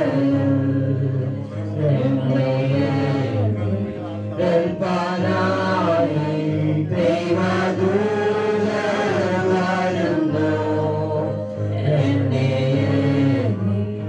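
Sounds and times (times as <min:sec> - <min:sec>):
slow chant-like singing: 0:00.0 - 0:14.0.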